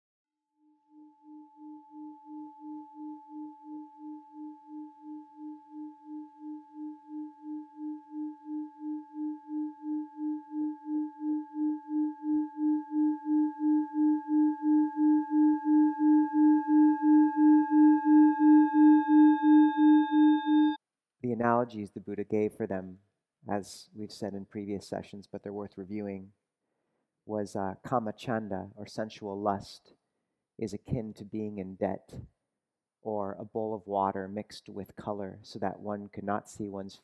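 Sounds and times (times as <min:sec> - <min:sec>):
singing bowl humming and ringing: 0:00.6 - 0:20.8.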